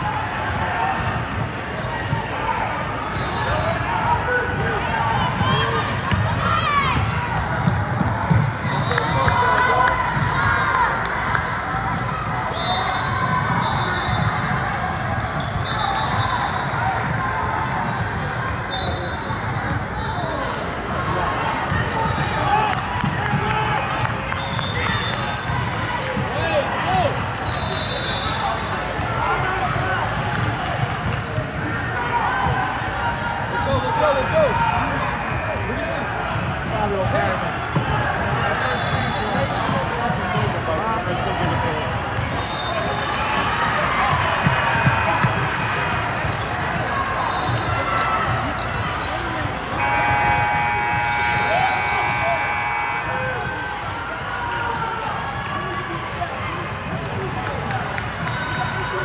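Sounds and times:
hubbub of voices echoing: 0.0s - 59.0s.

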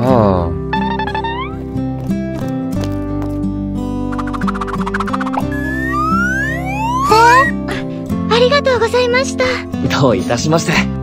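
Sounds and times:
background music: 0.0s - 11.0s
rising whistle glide: 4.2s - 7.6s.

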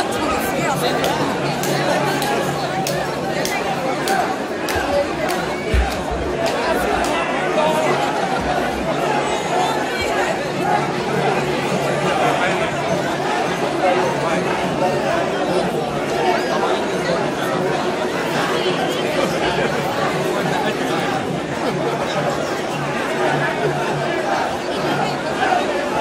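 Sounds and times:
crowd voices talking at once: 0.0s - 26.0s.

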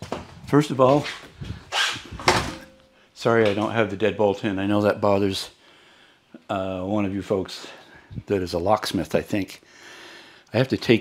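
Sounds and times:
door swinging shut: 2.0s - 2.8s.

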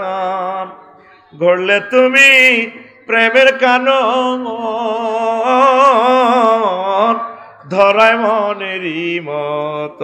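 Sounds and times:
man chanting melodically: 0.0s - 10.0s.

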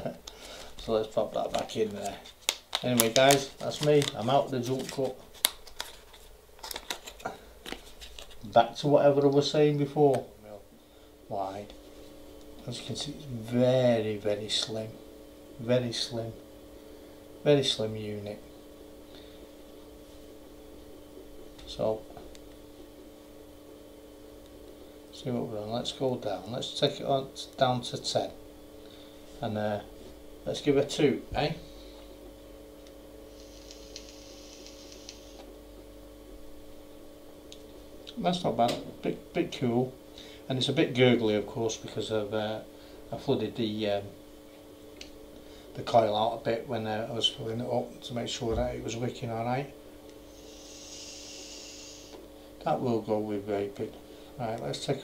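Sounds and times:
low electrical hum: 0.0s - 55.0s
e-cigarette puff hiss: 33.3s - 35.5s, 50.2s - 52.3s.

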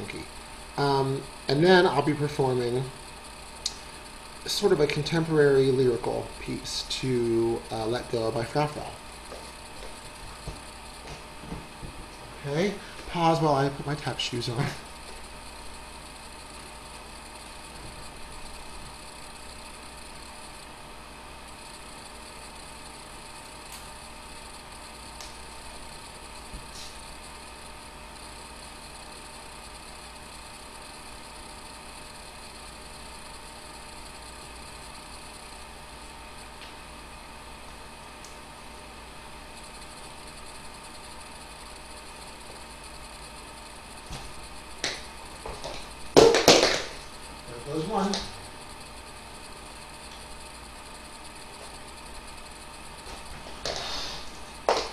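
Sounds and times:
steady room hum: 0.0s - 54.9s
tap shoes clacking on floor: 44.8s - 47.0s, 54.7s - 54.9s.

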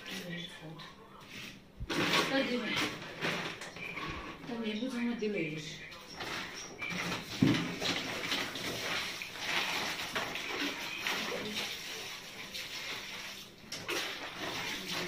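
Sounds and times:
water sloshing and splashing: 6.0s - 15.0s.

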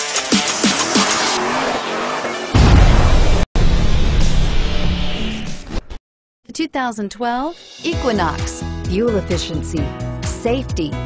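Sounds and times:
deep bass hit: 2.6s - 5.3s.

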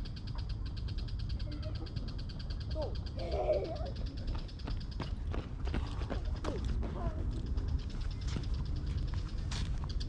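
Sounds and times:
running footsteps: 4.2s - 10.0s.

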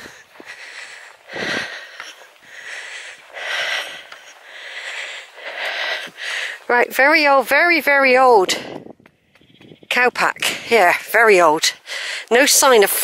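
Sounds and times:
person breathing: 0.0s - 6.7s, 11.8s - 12.3s.

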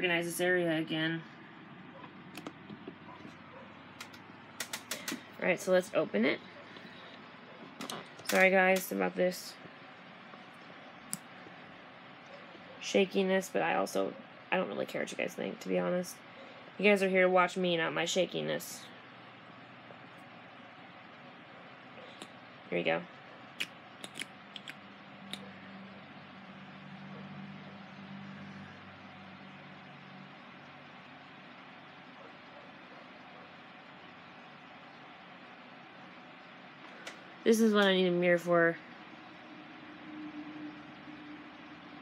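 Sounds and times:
makeup items clicking: 4.0s - 5.2s, 7.8s - 8.9s, 23.6s - 25.4s.

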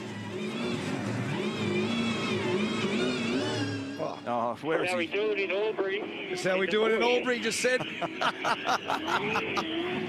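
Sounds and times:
race car engine revving: 0.0s - 4.0s, 7.8s - 10.0s.

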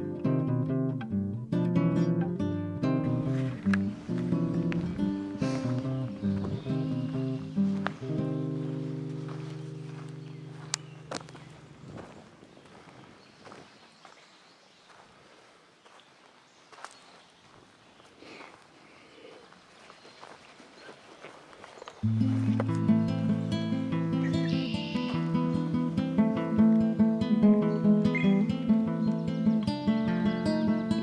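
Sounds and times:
acoustic guitar chord: 0.0s - 11.1s, 22.0s - 31.0s
faint footsteps on trail: 3.0s - 27.0s.

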